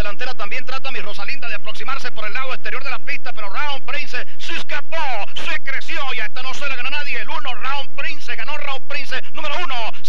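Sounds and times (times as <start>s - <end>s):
race caller talking rapidly: 0.0s - 10.0s.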